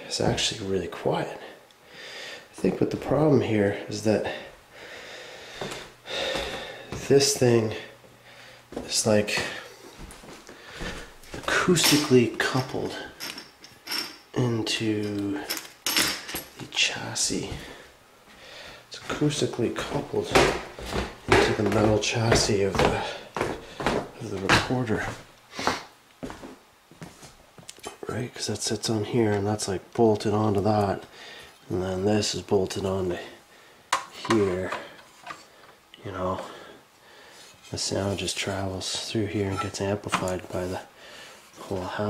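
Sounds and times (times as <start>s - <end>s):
person sharp intake of breath: 1.9s - 2.5s.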